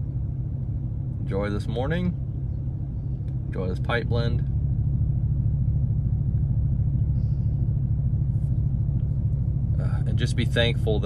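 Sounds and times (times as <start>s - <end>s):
vehicle engine and road noise: 0.0s - 11.0s.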